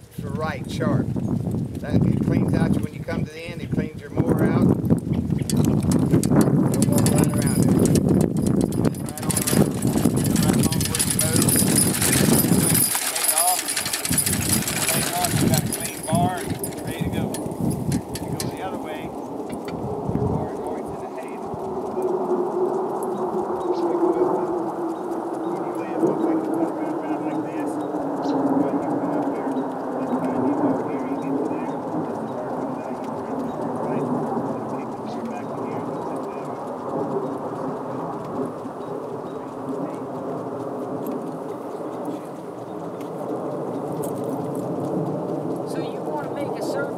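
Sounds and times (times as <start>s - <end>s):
sickle-bar mower clattering: 5.2s - 46.9s.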